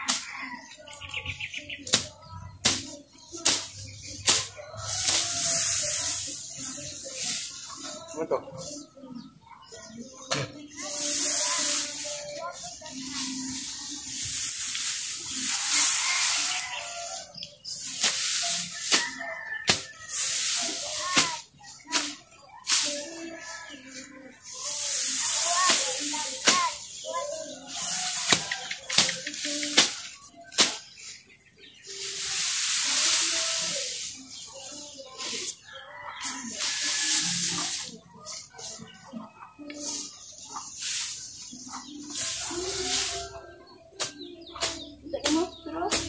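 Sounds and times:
dry grass rustling and crackling: 0.0 - 9.0, 9.8 - 31.2, 31.8 - 46.0
background music: 0.0 - 46.0.

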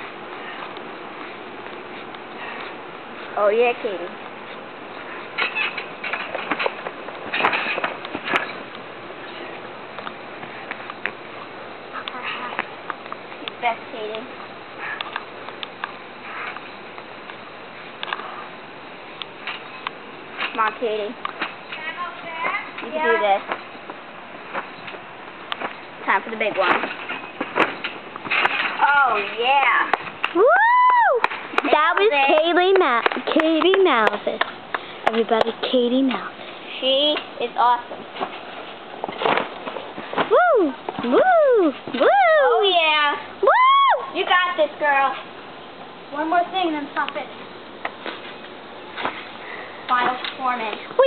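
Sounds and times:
trampoline springs squeaking: 0.0 - 10.7, 11.4 - 12.8, 13.6 - 30.7
trampoline mat rush: 5.0 - 8.7
trampoline clicks and knocks: 5.0 - 9.5, 19.3 - 36.3, 36.9 - 43.2, 47.8 - 51.0.

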